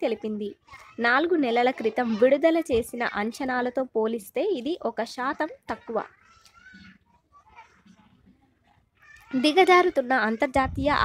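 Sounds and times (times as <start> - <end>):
faint scattered sounds: 0.0 - 11.0.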